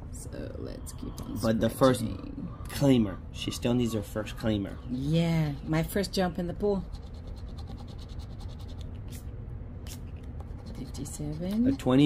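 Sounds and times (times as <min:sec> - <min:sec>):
scraper scratching lottery ticket: 0:06.8 - 0:08.8, 0:10.5 - 0:12.0.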